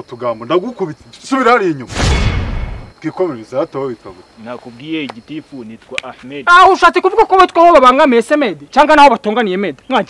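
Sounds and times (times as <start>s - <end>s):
loud burst of rushing noise: 1.9s - 3.0s.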